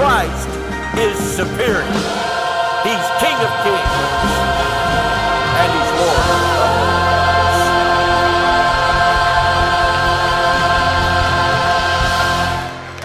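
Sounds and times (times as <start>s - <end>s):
choir holding a chord: 1.7s - 13.0s.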